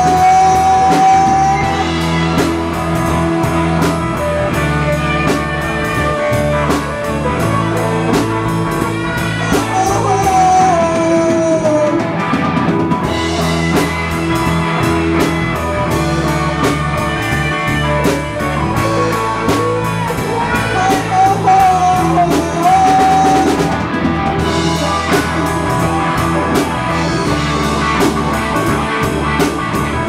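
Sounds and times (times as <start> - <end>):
bass guitar: 0.0 - 30.0
drum kit beat: 0.0 - 30.0
electric guitar lead melody: 0.0 - 30.0.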